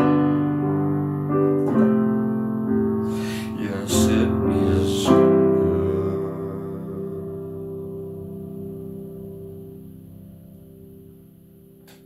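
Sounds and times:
piano chord ringing: 0.0s - 12.0s.

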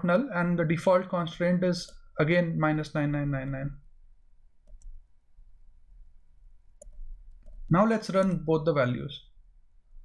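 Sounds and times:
computer mouse click: 4.6s - 5.0s, 6.7s - 8.4s.

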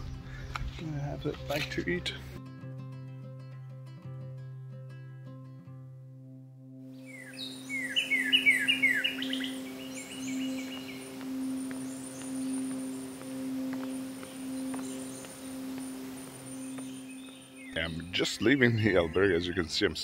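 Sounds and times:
songbird chirping: 6.9s - 20.0s
low humming tone: 9.2s - 17.7s.

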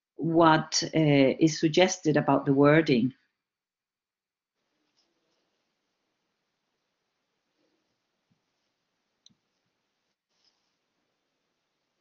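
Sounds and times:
background hiss: 4.8s - 12.0s.

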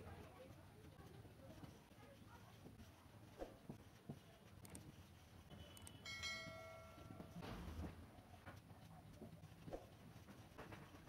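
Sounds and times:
faint bell-like ring: 5.9s - 7.4s.

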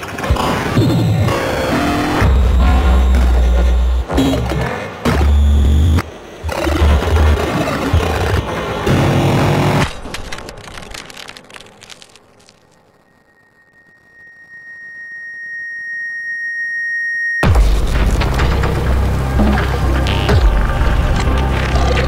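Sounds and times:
bass-heavy electronic music: 0.4s - 9.8s, 17.4s - 22.0s
crackle: 5.2s - 22.0s
steady high tone: 12.9s - 17.5s.

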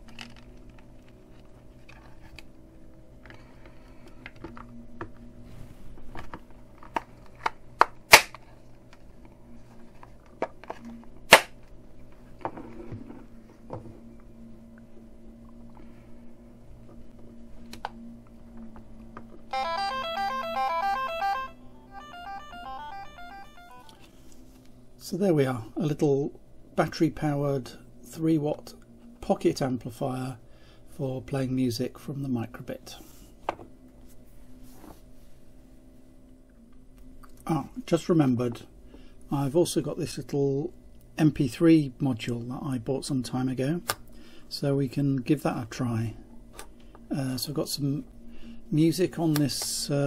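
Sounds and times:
faint steady hum: 0.0s - 50.0s
beeping square-wave melody: 19.5s - 24.1s.

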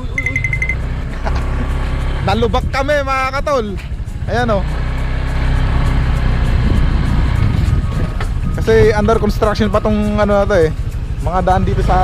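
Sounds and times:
motorcycle engine running: 0.0s - 12.0s
wind buffeting microphone: 6.3s - 11.2s.

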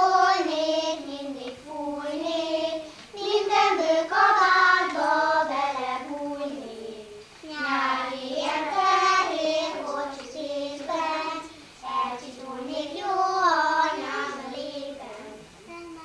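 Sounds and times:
young children singing: 0.0s - 16.0s.

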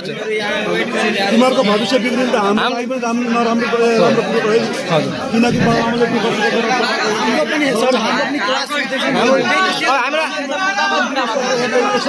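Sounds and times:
several voices talking: 0.0s - 12.0s.

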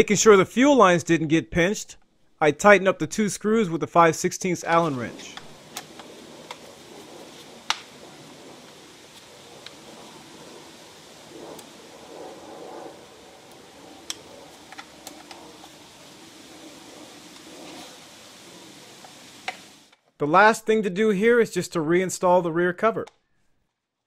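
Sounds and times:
faint steady hiss: 0.0s - 20.5s.

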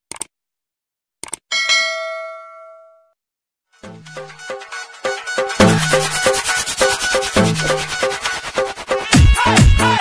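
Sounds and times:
notification bell ding: 1.5s - 3.1s
music with a beat: 3.9s - 10.0s.

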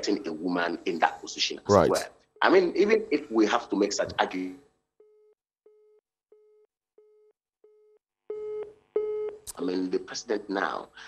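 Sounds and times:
telephone busy tone beeps: 7.7s - 9.4s.

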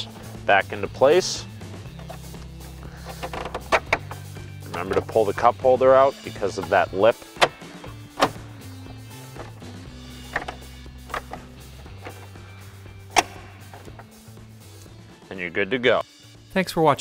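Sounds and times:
soft background music: 0.0s - 17.0s
plastic retainers clicking into place: 2.0s - 5.2s, 10.2s - 12.4s, 13.1s - 14.2s.

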